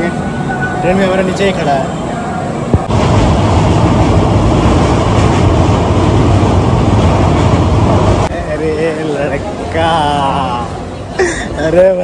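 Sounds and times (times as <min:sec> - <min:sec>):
train running over a bridge: 0:00.0 - 0:12.0.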